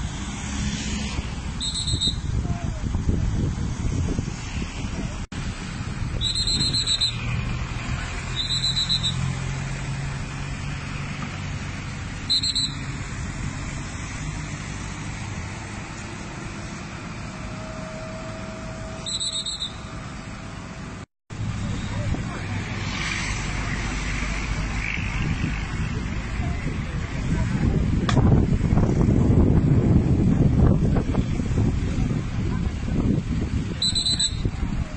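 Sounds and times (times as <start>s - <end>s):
traffic rumble: 0.0s - 34.9s
short high-pitched chirps: 1.6s - 2.3s, 6.2s - 7.3s, 8.3s - 9.3s, 12.3s - 12.9s, 19.0s - 20.0s
people talking: 2.4s - 3.3s, 21.5s - 28.6s, 30.6s - 34.9s.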